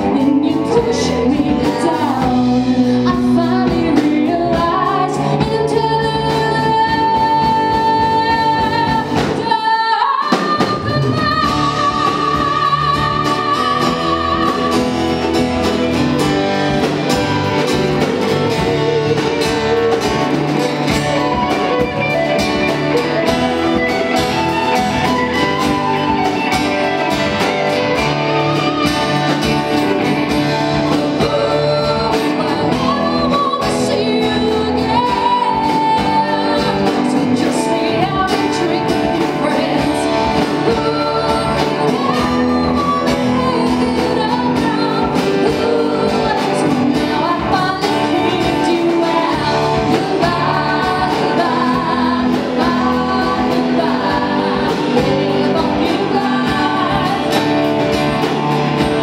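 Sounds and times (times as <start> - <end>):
live rock band playing: 0.0 - 59.0
woman singing lead: 0.0 - 59.0.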